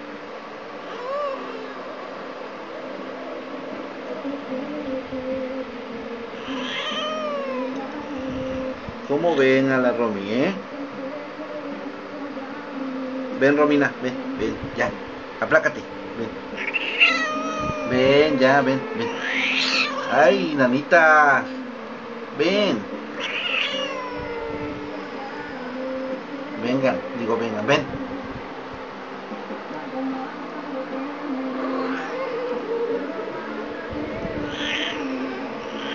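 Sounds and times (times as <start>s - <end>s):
cat moaning and yowling: 0.8s - 1.9s, 6.4s - 8.7s, 16.6s - 20.5s, 23.1s - 26.0s, 31.6s - 33.0s, 34.3s - 35.9s.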